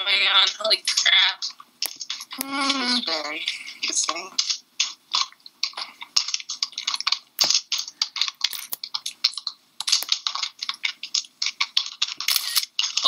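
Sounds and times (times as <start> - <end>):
fast typing on keyboard: 4.4 - 13.0.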